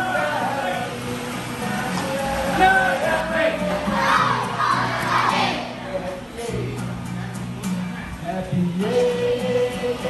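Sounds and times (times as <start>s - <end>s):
children shouting in unison: 3.8s - 5.8s.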